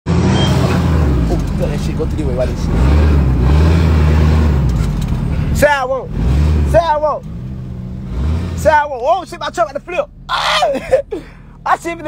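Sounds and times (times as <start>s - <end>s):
truck engine rumbling: 0.1s - 12.0s.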